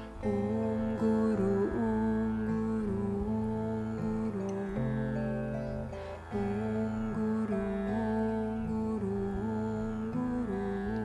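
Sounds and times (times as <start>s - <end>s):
acoustic guitar: 0.0s - 11.0s
plucked zither: 0.0s - 11.0s
woman singing wordless notes: 0.0s - 11.0s.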